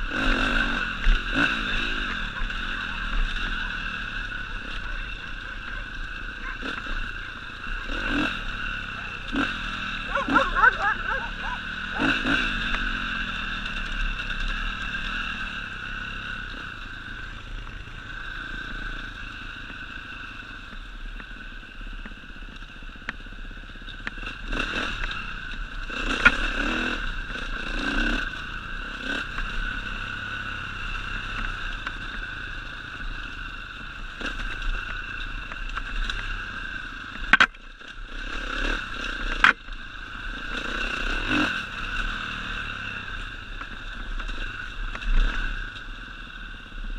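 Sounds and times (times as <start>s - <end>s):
motorcycle engine running: 0.0s - 46.9s.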